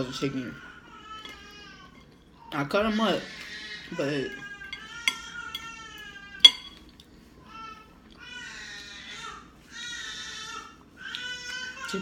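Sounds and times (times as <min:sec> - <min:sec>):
fork clinking on plate: 0:04.7 - 0:05.8, 0:06.4 - 0:07.0.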